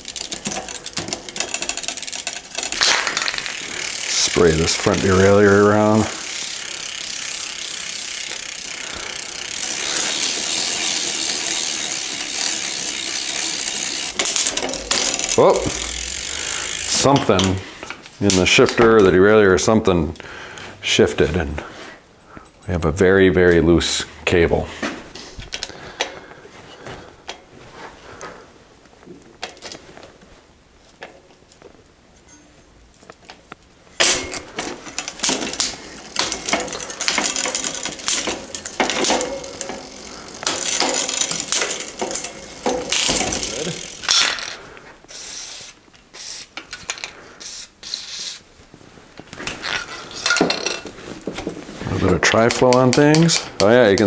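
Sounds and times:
freewheel clicking and ratcheting: 0:00.0 - 0:17.6, 0:34.0 - 0:44.6
bicycle chain running: 0:00.0 - 0:17.7, 0:34.0 - 0:47.1.

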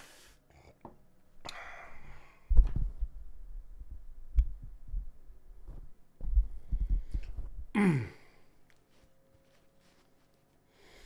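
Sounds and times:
microphone handling thumps: 0:02.5 - 0:07.7.

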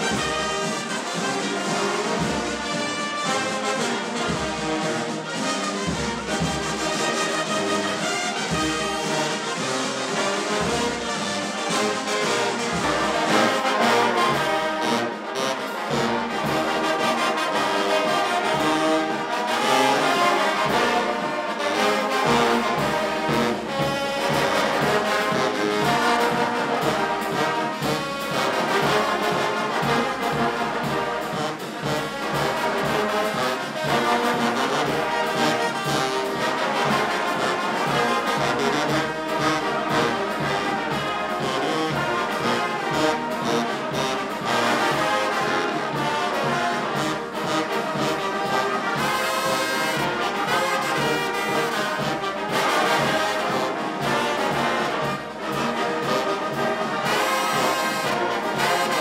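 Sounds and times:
brass band playing: 0:00.0 - 0:59.0.

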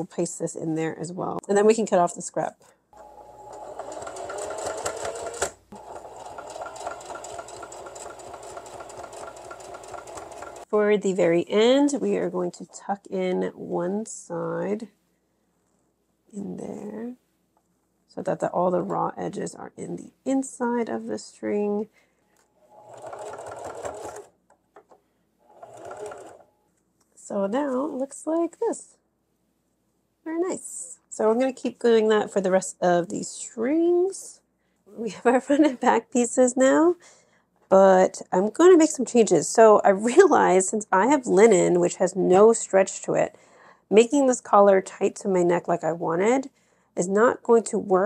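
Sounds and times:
electric sewing machine running: 0:03.0 - 0:10.7, 0:22.7 - 0:24.3, 0:25.5 - 0:26.5.

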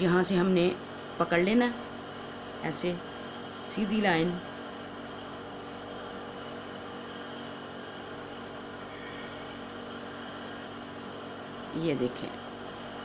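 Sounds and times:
electric appliance hum: 0:00.0 - 0:13.0.

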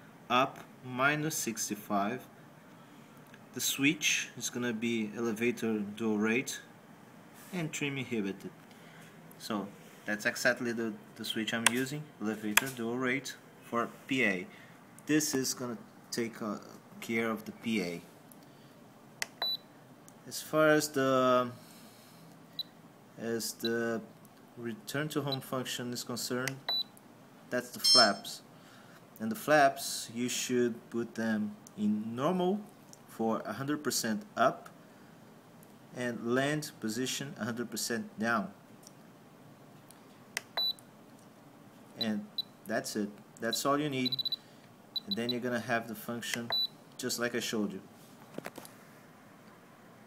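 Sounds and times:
short high beep: 0:27.8 - 0:28.3.

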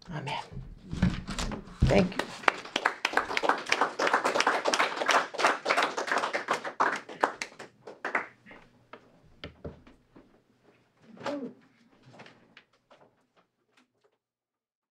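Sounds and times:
small audience applauding: 0:01.9 - 0:08.7.

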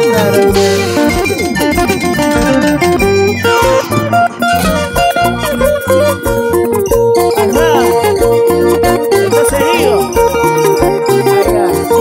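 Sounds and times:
plucked guitar: 0:00.0 - 0:12.0
steady bass line: 0:00.0 - 0:12.0.

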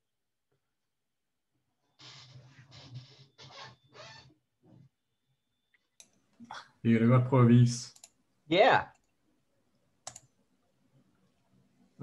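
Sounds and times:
man mumbling over video call: 0:06.7 - 0:08.0
faint clicks: 0:08.9 - 0:10.4.

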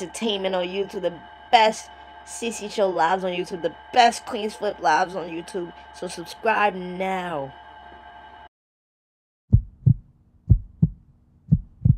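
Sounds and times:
faint steady hum: 0:00.0 - 0:08.5
heartbeat thumps: 0:09.5 - 0:11.9.

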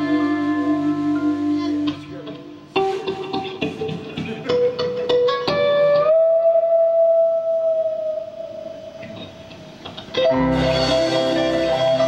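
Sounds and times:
band with drums bass and keyboards: 0:00.0 - 0:08.2, 0:09.3 - 0:12.0
electric guitar notes: 0:00.0 - 0:12.0.

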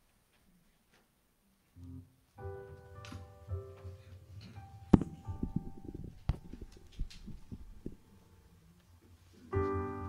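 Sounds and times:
light rustling: 0:02.8 - 0:08.2
soft low thumps: 0:03.6 - 0:08.2.

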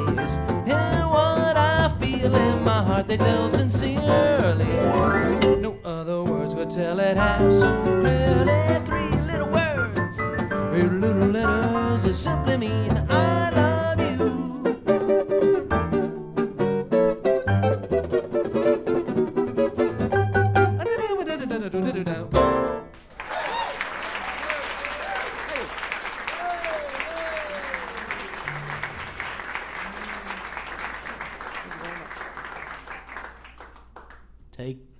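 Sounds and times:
jazz trio playing swing: 0:00.0 - 0:05.7, 0:06.3 - 0:20.8
audience applause and cheering: 0:22.9 - 0:34.3.

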